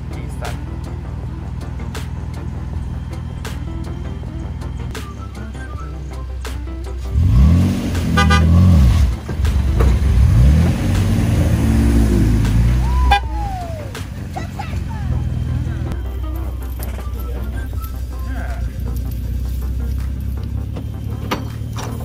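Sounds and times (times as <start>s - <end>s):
pickup truck engine revving: 0.0s - 22.0s
short horn toot: 8.0s - 9.0s, 12.8s - 13.8s.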